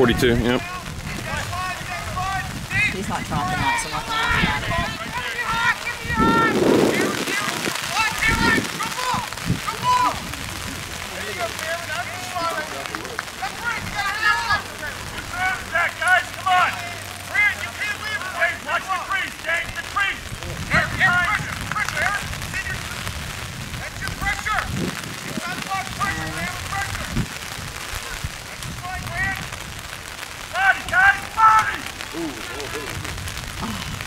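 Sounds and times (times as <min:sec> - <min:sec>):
background hiss: 0:00.0 - 0:34.0
people shouting and calling: 0:00.0 - 0:34.0.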